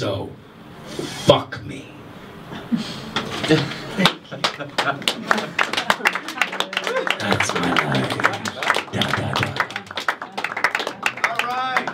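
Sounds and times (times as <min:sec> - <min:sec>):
small audience clapping: 0:03.1 - 0:11.9.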